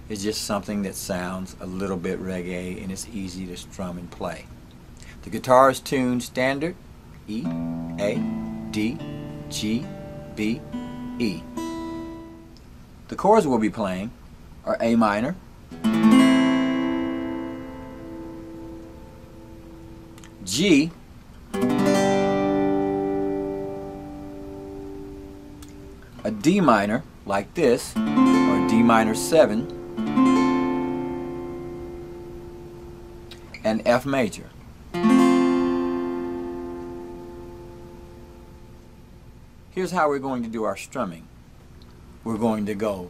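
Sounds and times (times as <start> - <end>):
acoustic guitar chord ringing: 7.4 - 12.6, 15.7 - 26.9, 27.9 - 33.6, 34.9 - 39.2.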